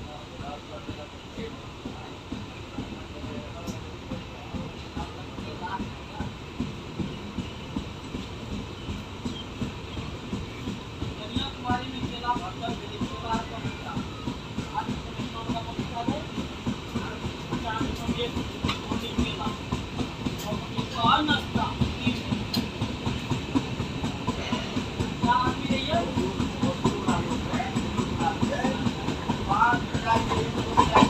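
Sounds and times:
train wheels rumbling on rails: 0:00.0 - 0:31.0.

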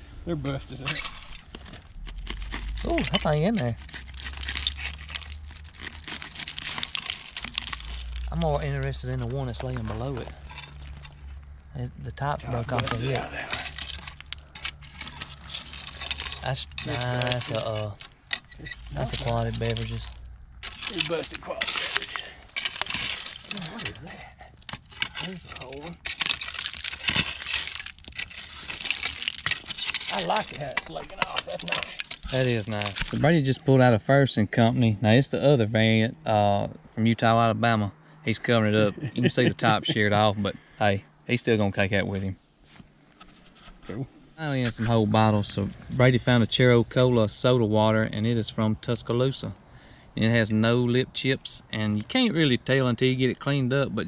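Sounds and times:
rake clinking glass in soil: 0:02.2 - 0:11.2, 0:12.4 - 0:33.3.

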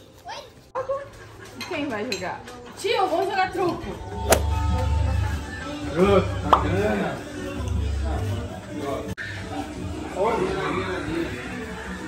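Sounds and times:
voices: 0:00.8 - 0:12.0.

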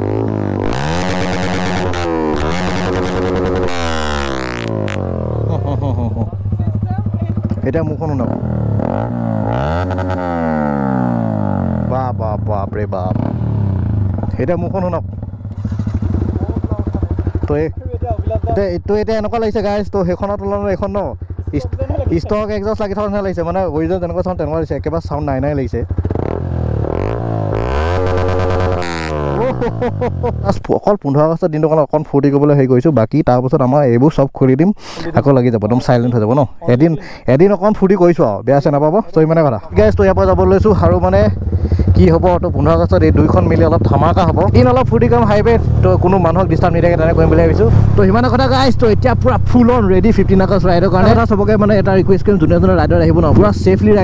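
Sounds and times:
motorcycle engine revving: 0:00.0 - 0:30.7, 0:39.7 - 0:54.0.

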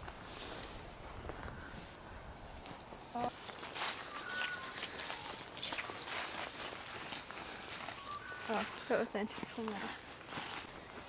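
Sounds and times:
footsteps crunching dry leaves: 0:02.6 - 0:11.0.

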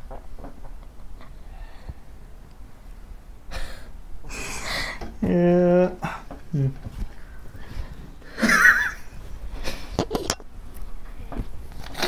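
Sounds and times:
quiet room noise: 0:00.0 - 0:12.0
person short vocal sound: 0:05.2 - 0:06.8.

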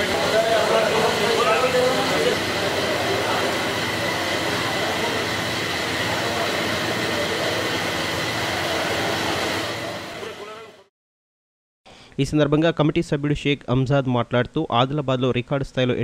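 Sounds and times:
murmur of voices: 0:00.0 - 0:10.8
air coolers and fans rushing: 0:00.0 - 0:10.9.

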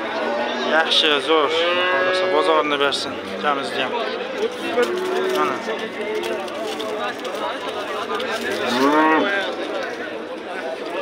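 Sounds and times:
crowd talk: 0:00.0 - 0:11.0
cattle mooing: 0:01.4 - 0:02.6, 0:08.6 - 0:09.3.

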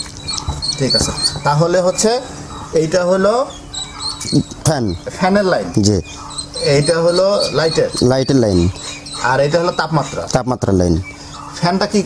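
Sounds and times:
high short bird chirps: 0:00.0 - 0:02.8
man talking: 0:00.8 - 0:03.5, 0:04.2 - 0:12.0.

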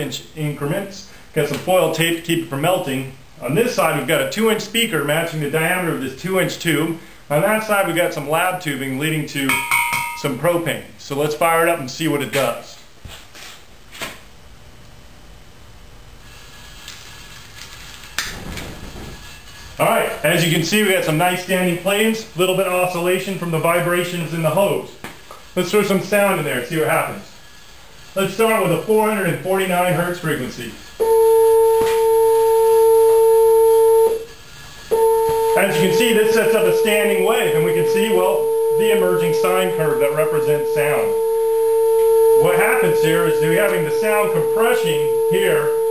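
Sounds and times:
steady gas hiss: 0:00.0 - 0:09.5, 0:16.1 - 0:41.7
flames igniting with rush: 0:16.3 - 0:19.8
steady sine tone: 0:30.2 - 0:45.9.

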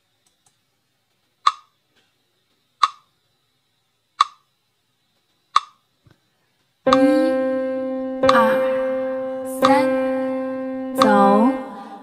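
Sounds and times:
metronome ticking: 0:01.4 - 0:01.7, 0:02.8 - 0:03.1, 0:04.2 - 0:04.5, 0:05.5 - 0:05.8, 0:06.9 - 0:11.8.

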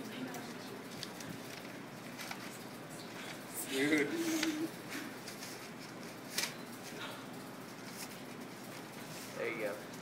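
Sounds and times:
paper rustling: 0:00.9 - 0:07.0, 0:07.7 - 0:09.9.

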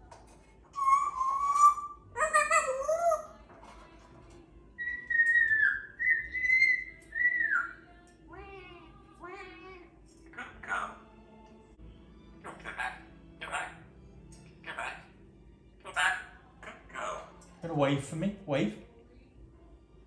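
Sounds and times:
parrot chattering calls: 0:00.8 - 0:03.3, 0:04.8 - 0:07.8, 0:10.3 - 0:11.0, 0:12.4 - 0:13.8, 0:14.6 - 0:15.2, 0:15.8 - 0:17.4
parrot warbling call: 0:00.8 - 0:03.3, 0:04.8 - 0:11.0, 0:12.4 - 0:13.8, 0:14.6 - 0:15.2, 0:15.8 - 0:17.4
parrot whistling: 0:00.8 - 0:03.3, 0:04.8 - 0:07.8.

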